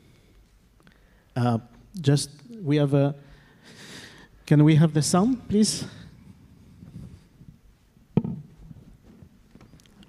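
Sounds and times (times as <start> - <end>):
faint low background noise: 0.0 - 10.0.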